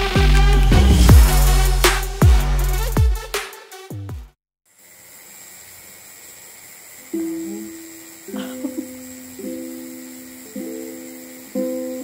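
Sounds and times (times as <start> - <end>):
room tone hiss: 4.7 - 12.0.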